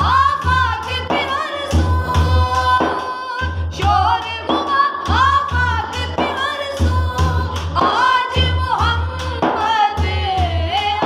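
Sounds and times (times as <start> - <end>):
frame drum beating: 0.0 - 11.0
women singing devotional song: 0.0 - 11.0.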